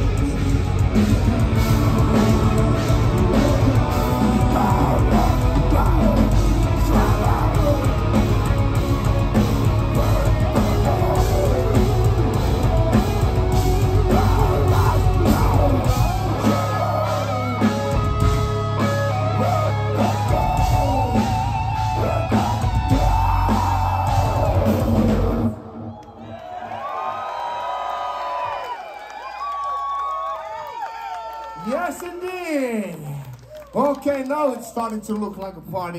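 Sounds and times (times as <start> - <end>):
live metal band playing: 0.0 - 25.8
crowd cheering and whooping: 0.0 - 35.0.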